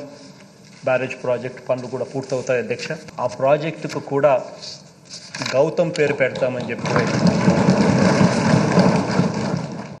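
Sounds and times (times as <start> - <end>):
people thumping desks in applause: 6.4 - 10.0.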